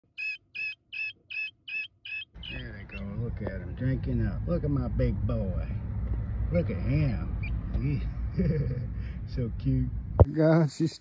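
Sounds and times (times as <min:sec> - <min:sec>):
guinea fowl keet peeping: 0:00.1 - 0:03.2.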